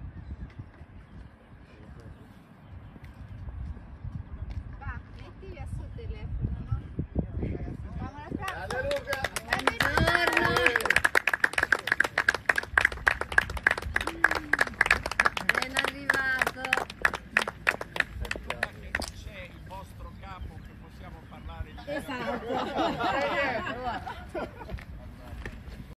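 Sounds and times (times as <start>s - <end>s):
people applauding: 8.4s - 19.0s
voices talking and calling out: 14.0s - 25.6s.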